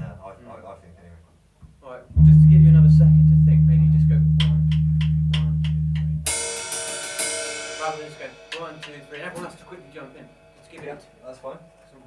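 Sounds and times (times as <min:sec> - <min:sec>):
bass guitar note ringing: 0:02.1 - 0:06.7
drum kit ticks: 0:02.2 - 0:06.4, 0:08.5 - 0:09.6
cymbal crash: 0:06.1 - 0:10.8.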